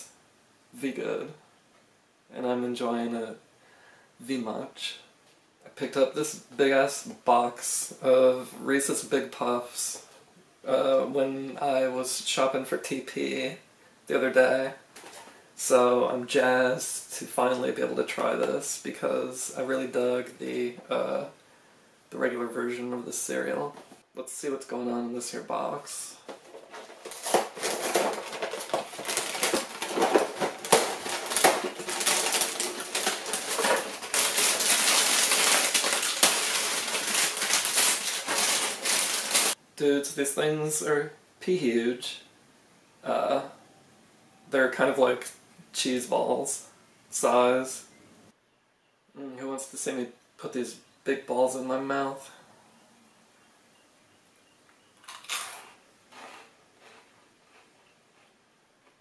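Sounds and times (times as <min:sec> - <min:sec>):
cereal box liner crackling: 0:26.2 - 0:39.6, 0:55.0 - 0:58.3
plastic bag rustling: 0:26.2 - 0:39.6.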